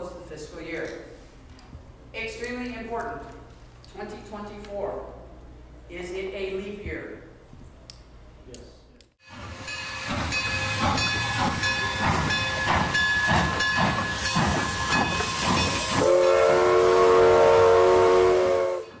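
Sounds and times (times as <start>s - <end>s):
steam locomotive chuffing: 9.2s - 19.0s
steam whistle blast: 14.1s - 19.0s.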